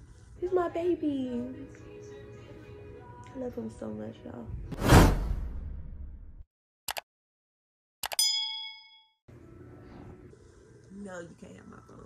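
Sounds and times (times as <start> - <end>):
sharp mouse click: 6.9 - 7.1
bright bell ding: 8.1 - 9.2.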